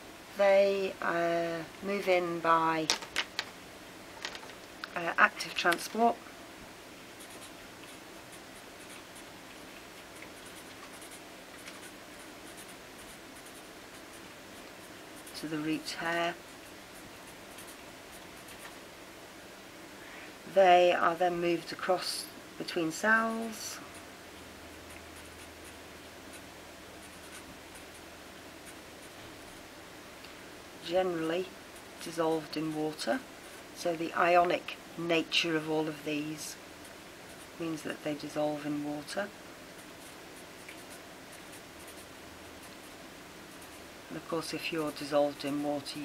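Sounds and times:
marker pen scratching on paper: 10.2s - 15.5s, 39.8s - 43.8s.

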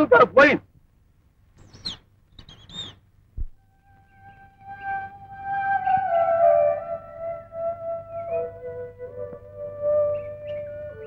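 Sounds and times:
high gliding bird chirps: 1.6s - 3.0s, 3.8s - 8.9s
film score with flute-like notes: 3.6s - 11.0s.

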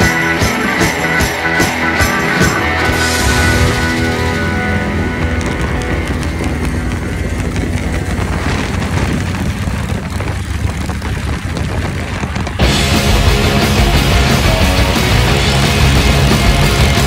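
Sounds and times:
rock music: 0.0s - 9.6s, 12.5s - 17.0s
motorcycle engines rumbling: 0.0s - 17.0s.

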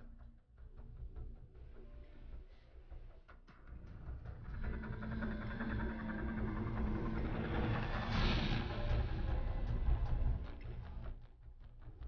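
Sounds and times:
low rumbling drone music: 0.0s - 12.0s.

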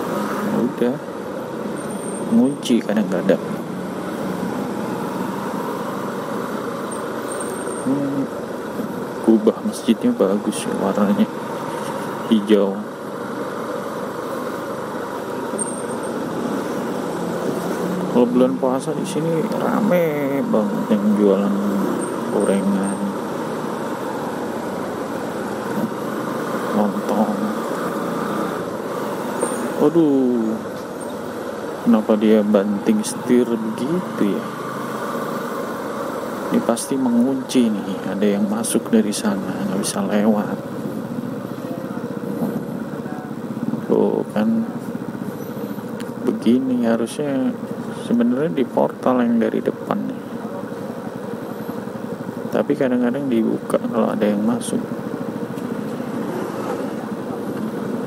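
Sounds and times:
road and wind noise: 0.0s - 58.0s
motorcycle engine running: 0.8s - 48.1s, 49.9s - 58.0s
motorcycle engine running at low revs: 39.1s - 46.5s, 49.9s - 58.0s.

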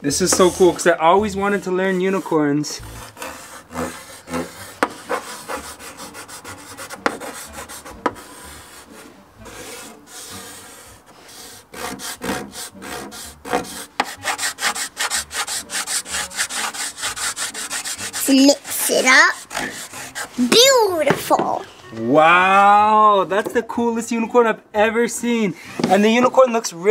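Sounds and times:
chalk scraping on a chalkboard: 0.0s - 21.7s.

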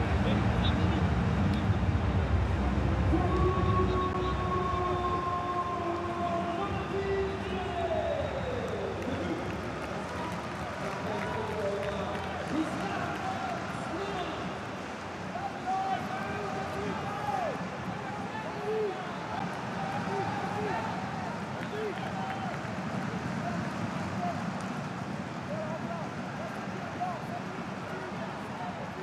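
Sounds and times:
heavy low noise: 0.0s - 18.5s.

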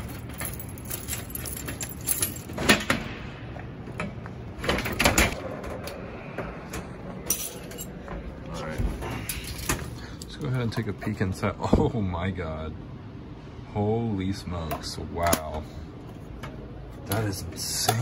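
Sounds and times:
keys jangling on a keyring: 0.0s - 2.7s, 7.3s - 8.0s
metal door opening with clicks: 4.0s - 6.0s.

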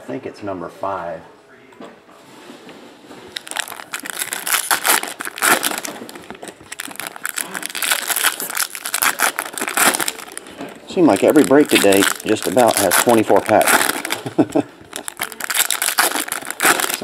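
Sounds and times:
foil wrappers crinkling: 3.2s - 17.0s
person speaking: 10.0s - 15.9s.

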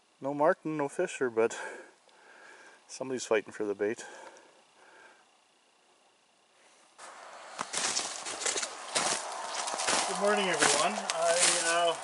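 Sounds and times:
footsteps crunching through snow: 7.0s - 12.0s.

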